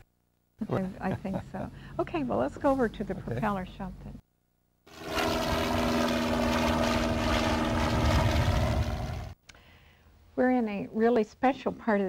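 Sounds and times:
propeller aircraft engine running: 0:04.9 - 0:09.4.

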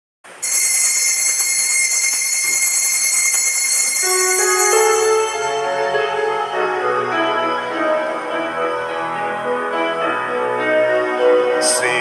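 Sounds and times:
small bells jingling: 0:00.4 - 0:06.6
organ playing a hymn: 0:00.4 - 0:12.0.

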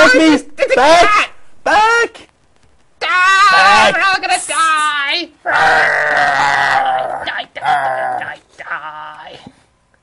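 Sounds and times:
man groaning: 0:05.4 - 0:09.4.

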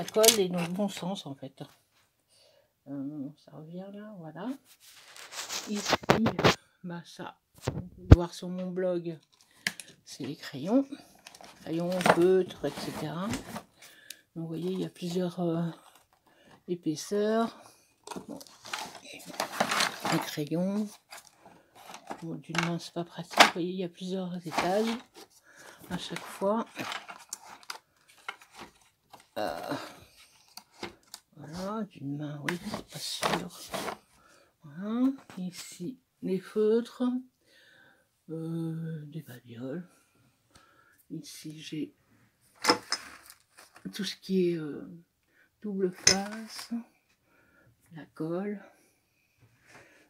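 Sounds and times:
rustling: 0:04.6 - 0:06.6, 0:10.3 - 0:16.5, 0:18.0 - 0:23.6, 0:24.4 - 0:31.7, 0:32.6 - 0:34.2.

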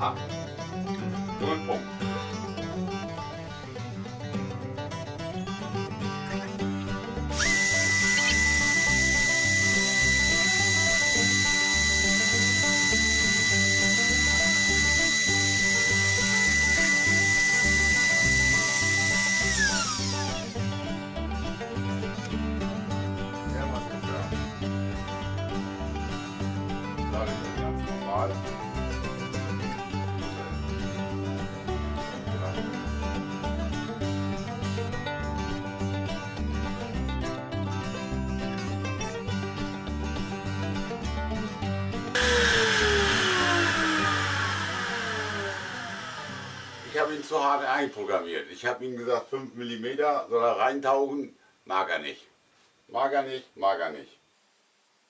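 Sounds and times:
background music: 0:00.0 - 0:47.8
router spindle whining: 0:07.3 - 0:20.9, 0:42.2 - 0:47.4.

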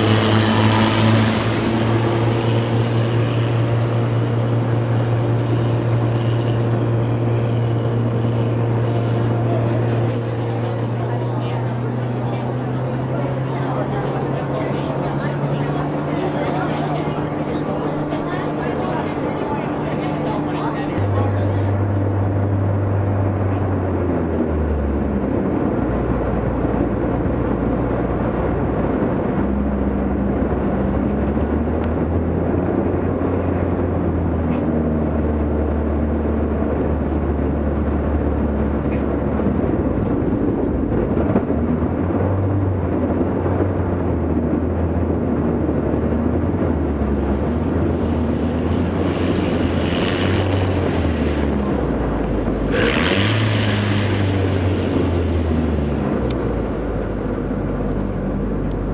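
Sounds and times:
light aircraft engine droning: 0:00.0 - 0:58.9
rushes of noise: 0:00.0 - 0:58.9.

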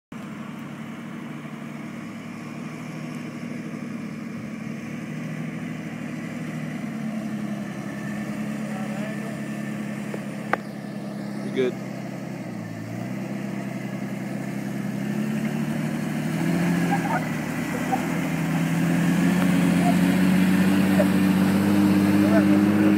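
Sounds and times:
engine pulling at low revs: 0:00.1 - 0:22.9.

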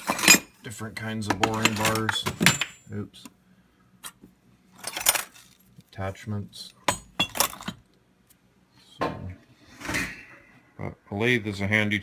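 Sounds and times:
metal tools clinking: 0:00.0 - 0:00.6, 0:01.4 - 0:02.9, 0:04.8 - 0:05.6.

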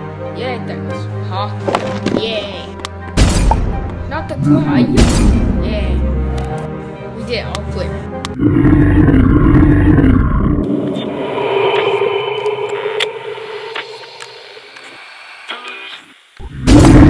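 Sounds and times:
loud deep monster roar: 0:04.3 - 0:05.7, 0:08.4 - 0:14.9, 0:16.4 - 0:17.0
long drawn-out growl: 0:08.4 - 0:15.0.

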